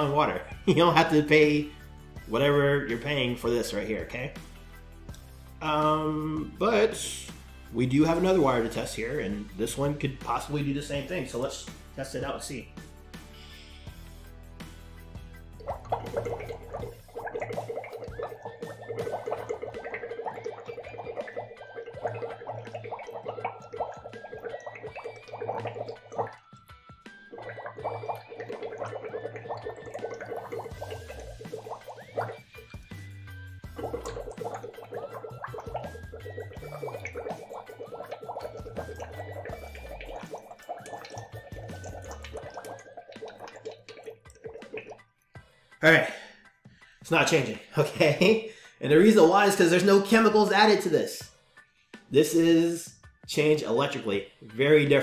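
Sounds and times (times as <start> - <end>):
background music with bass: 0.0 - 55.0
straw bubbling in water: 15.4 - 45.1.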